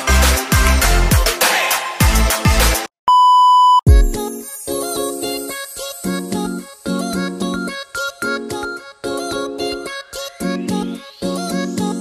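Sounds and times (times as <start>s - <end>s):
high-pitched test tone beep: 3.1s - 3.8s
music with deep kick drum: 3.9s - 4.2s.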